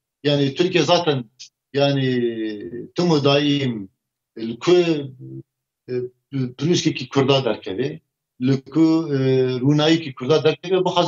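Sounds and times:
man talking: 0:00.2 - 0:11.0.

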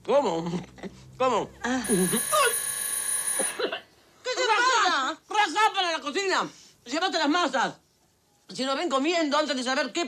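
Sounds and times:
electric doorbell ringing: 0:01.9 - 0:03.7.

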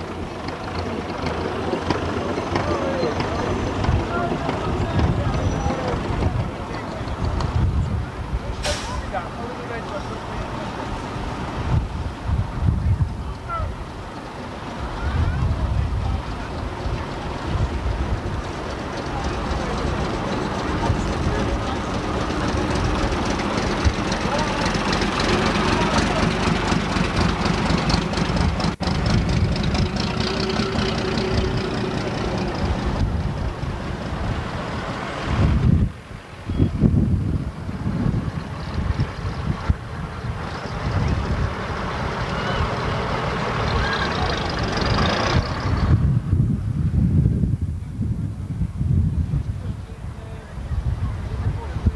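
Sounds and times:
diesel engine running: 0:00.0 - 0:36.0, 0:37.3 - 0:46.4
wind buffeting microphone: 0:00.0 - 0:51.9.

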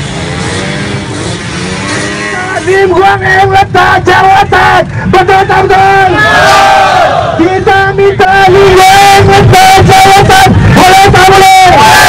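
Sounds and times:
motorcycle and scooter engines: 0:00.0 - 0:11.2.

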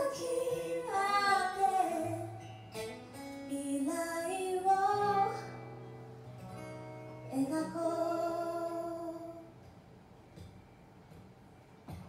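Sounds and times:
woman singing a slow ballad: 0:00.0 - 0:02.5, 0:03.4 - 0:05.8, 0:07.3 - 0:09.5
acoustic guitar: 0:00.0 - 0:12.0.

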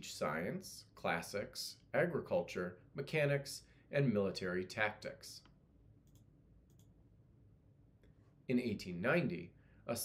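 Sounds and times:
computer mouse clicks: 0:05.4 - 0:07.0.

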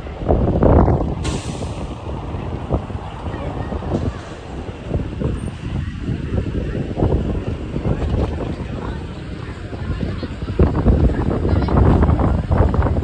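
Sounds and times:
street traffic passing: 0:00.0 - 0:13.0
air brake hiss: 0:01.2 - 0:02.2.

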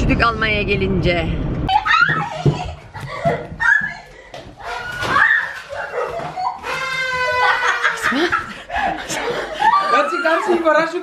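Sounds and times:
people laughing and exclaiming: 0:01.7 - 0:11.0.

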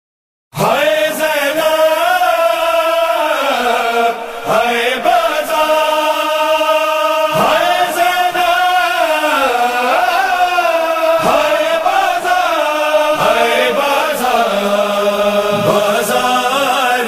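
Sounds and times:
voices chanting a lament: 0:00.6 - 0:17.0.

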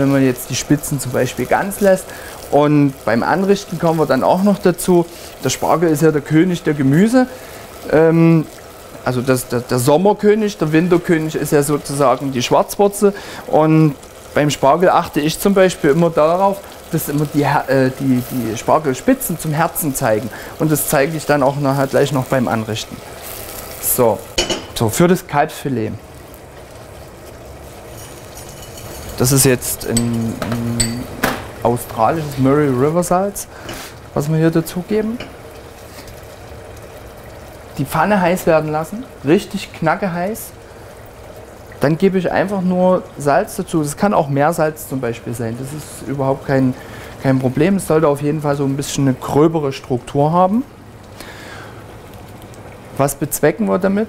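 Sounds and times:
salt hissing in hot pan: 0:00.1 - 0:05.8, 0:33.5 - 0:34.0.

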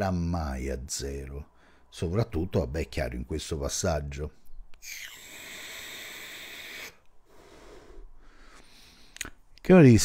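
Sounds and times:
man breathing: 0:01.5 - 0:01.9, 0:04.9 - 0:09.4.

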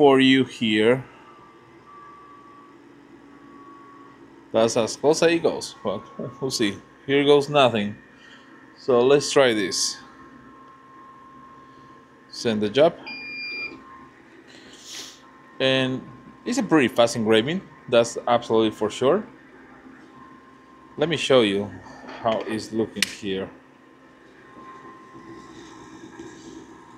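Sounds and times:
faint high whine: 0:00.0 - 0:26.9
low whir of fans: 0:00.0 - 0:26.9.

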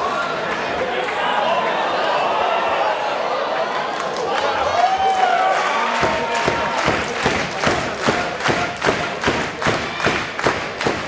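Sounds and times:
crowd clapping in rhythm: 0:03.8 - 0:11.0.

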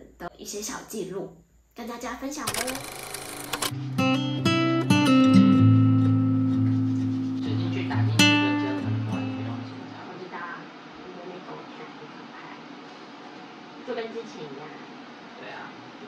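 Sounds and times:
acoustic guitar music: 0:03.6 - 0:10.1.

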